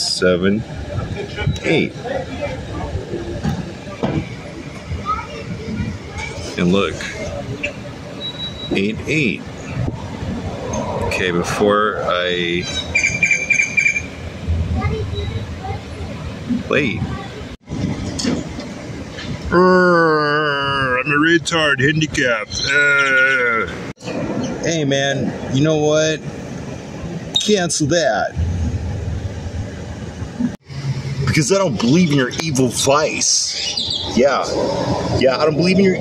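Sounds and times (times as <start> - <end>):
vehicle engine rumble: 0.0 - 36.0
low rumble: 14.1 - 18.2, 28.3 - 31.2.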